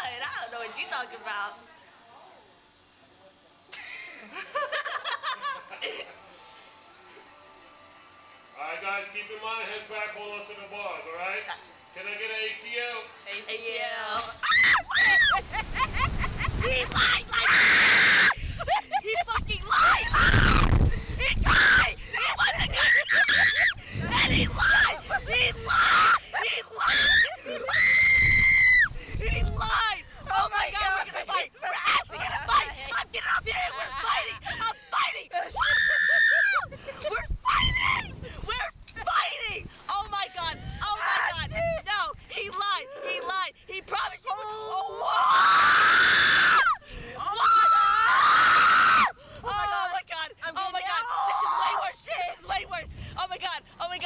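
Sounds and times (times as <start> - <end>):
people laughing: 3.7 - 6.3, 14.9 - 17.7
people screaming: 14.2 - 18.7, 19.6 - 29.0, 35.4 - 36.7, 44.4 - 49.2, 51.0 - 52.0
wind buffeting microphone: 15.3 - 17.4, 18.4 - 22.9, 23.6 - 25.8, 28.2 - 30.9, 36.6 - 42.3.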